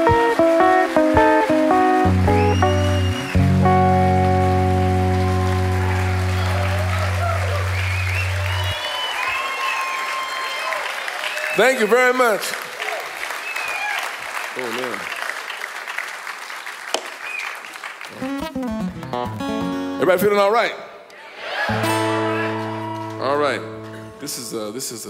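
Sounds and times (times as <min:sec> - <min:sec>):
live blues guitar music: 0:00.0 - 0:08.6, 0:18.1 - 0:20.0, 0:21.7 - 0:24.5
audience applauding and cheering: 0:00.0 - 0:19.8, 0:21.1 - 0:24.0.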